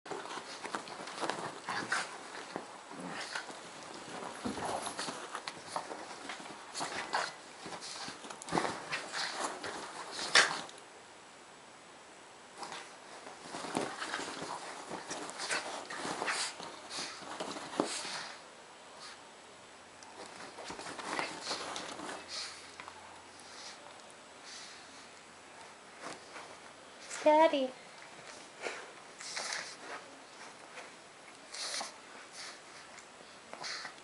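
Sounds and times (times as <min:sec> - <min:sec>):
dogs scuffling on bedding: 0:00.1 - 0:10.8, 0:12.6 - 0:18.4, 0:20.1 - 0:23.9, 0:24.5 - 0:34.0.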